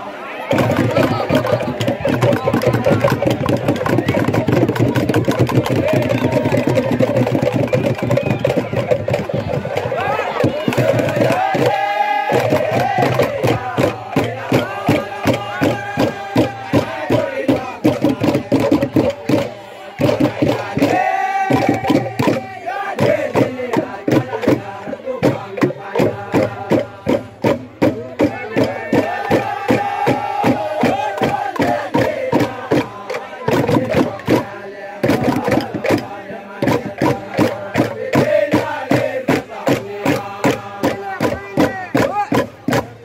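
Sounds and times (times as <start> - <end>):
men chanting together: 0.0 - 43.0.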